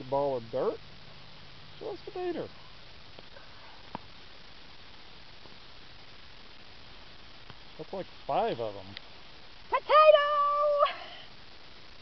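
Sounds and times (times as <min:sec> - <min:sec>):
woman's drawn-out exclamation: 0:09.7 - 0:11.3.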